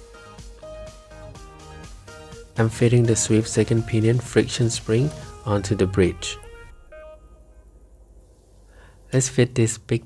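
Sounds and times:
faint background music: 0.0 - 10.0
low steady hum: 2.6 - 10.0.

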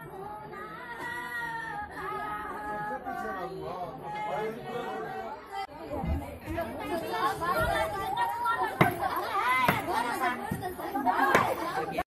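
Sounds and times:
women and girls talking: 0.0 - 12.0.

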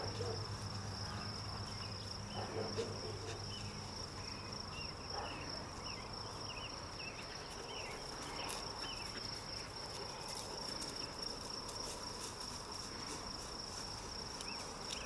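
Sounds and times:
insects trilling: 0.0 - 15.0.

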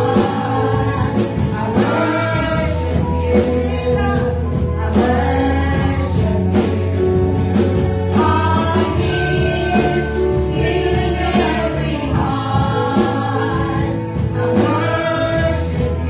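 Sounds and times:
bass: 0.0 - 16.0
keyboard: 0.0 - 16.0
steady drum beat: 0.0 - 16.0
voices singing together: 0.0 - 16.0.

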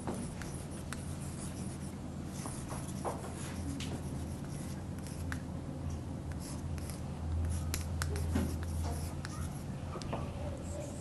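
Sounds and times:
chalk tapping and scratching: 0.0 - 5.4, 6.3 - 11.0
steady low hum: 0.0 - 11.0.

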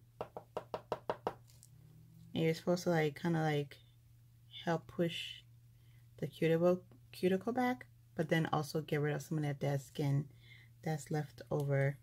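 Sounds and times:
fingernail tapping quartz: 0.2 - 1.6.

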